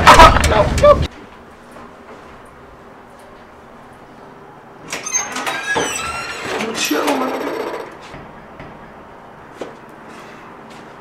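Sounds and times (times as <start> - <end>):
door hinge squealing: 4.9 - 8.0.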